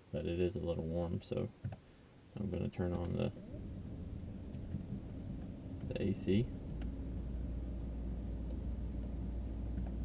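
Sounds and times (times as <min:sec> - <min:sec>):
car air conditioning hum: 0:00.2 - 0:10.0.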